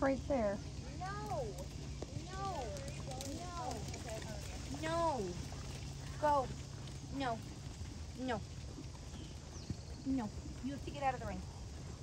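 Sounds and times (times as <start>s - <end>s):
horse hoofbeats on sand: 1.0s - 12.0s.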